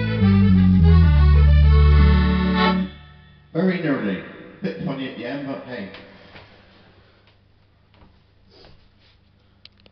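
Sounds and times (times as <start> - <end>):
accordion holding a chord: 0.0 - 3.3
man talking: 3.5 - 6.1.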